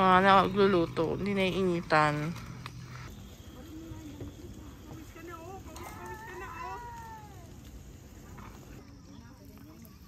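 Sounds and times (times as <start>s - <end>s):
drawn-out falling animal call: 1.4s - 8.8s
faint distant voices: 3.1s - 10.0s.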